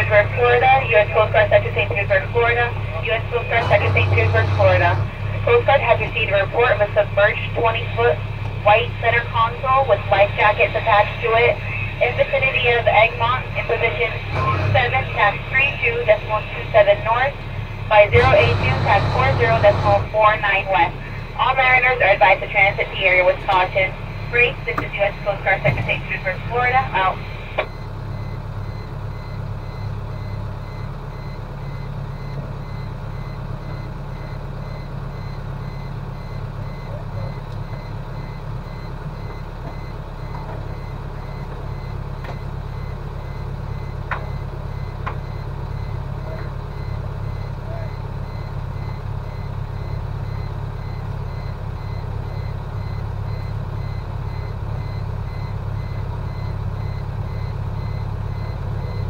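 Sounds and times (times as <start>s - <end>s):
boat engine idling: 0.0s - 59.0s.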